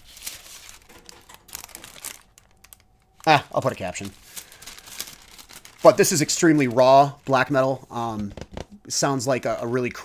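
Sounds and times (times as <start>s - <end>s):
sharp crackles: 0.0s - 7.7s
paper rustling and crinkling: 0.0s - 8.7s.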